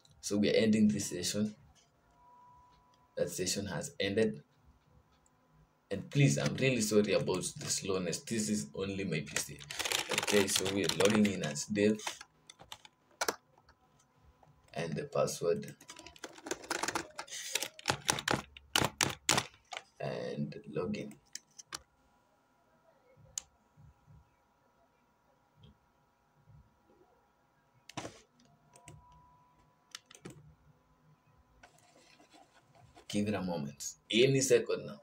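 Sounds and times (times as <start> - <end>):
keyboard keystrokes: 15.7 - 19.9.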